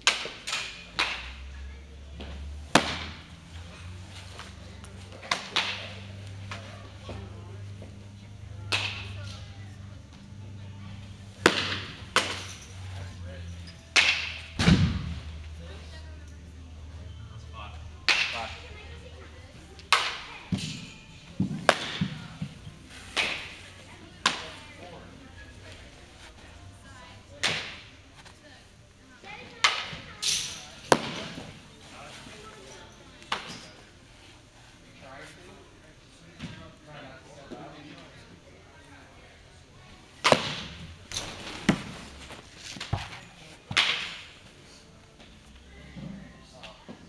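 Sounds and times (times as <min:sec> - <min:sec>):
baseball hitting catcher's mitt: 0:02.7 - 0:03.2, 0:08.7 - 0:09.2, 0:11.4 - 0:12.5, 0:24.2 - 0:24.6, 0:40.2 - 0:40.8
bat striking ball: 0:11.4 - 0:12.5.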